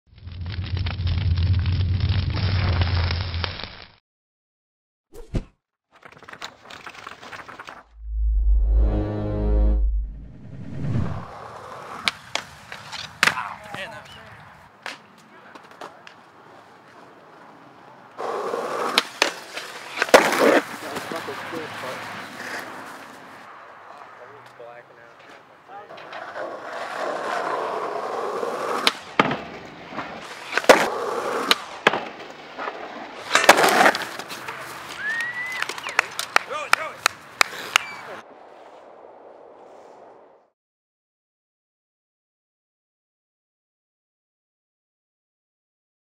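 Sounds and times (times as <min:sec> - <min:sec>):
skateboard rolling on concrete: 0:10.7 - 0:40.5
skateboard clacking: 0:25.9 - 0:37.9.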